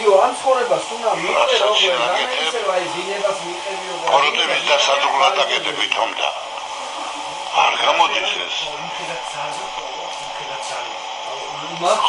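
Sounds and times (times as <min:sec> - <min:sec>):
person talking: 0:00.2 - 0:06.5, 0:07.5 - 0:12.0.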